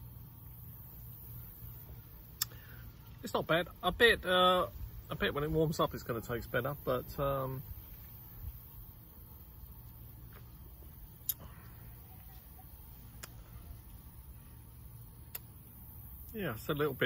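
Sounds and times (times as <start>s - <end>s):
faint low rumble: 0.0s - 17.0s.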